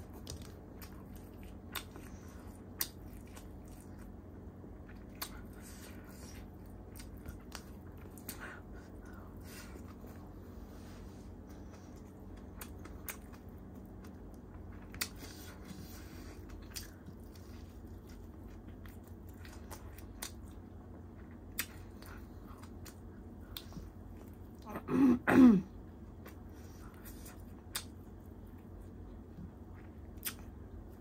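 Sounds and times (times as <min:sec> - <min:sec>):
person coughing: 0:24.7 - 0:25.8.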